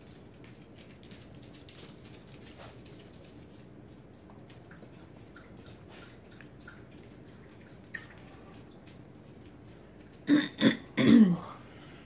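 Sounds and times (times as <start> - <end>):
puppies scrabbling on tile floor: 0.0 - 10.2.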